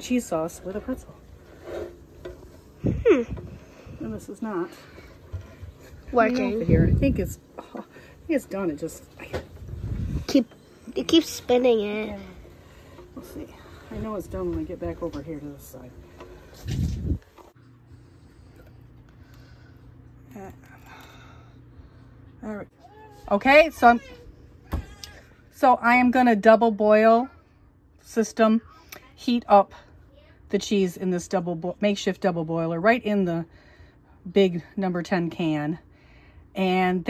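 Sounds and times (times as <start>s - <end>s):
faint steady hum: 0.0s - 37.0s
can opener ticking and scraping: 0.8s - 3.6s
woman humming hmm: 2.8s - 3.5s.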